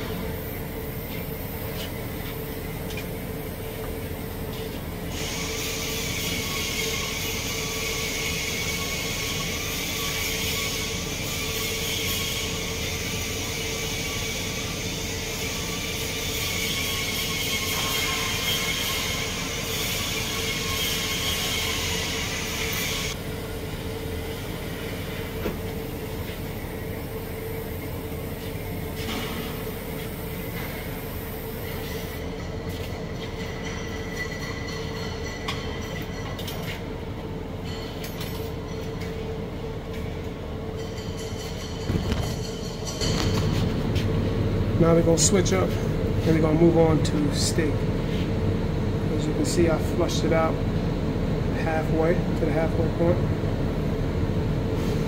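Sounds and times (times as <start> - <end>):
steady hum: 0.0 - 55.0
welding arc hissing: 4.7 - 23.2.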